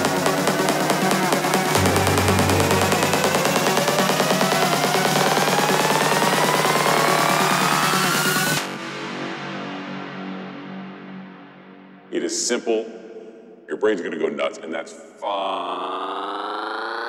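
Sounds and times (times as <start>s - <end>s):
dark psytrance track: 0.0s - 12.1s
rising synth sweep: 1.6s - 12.0s.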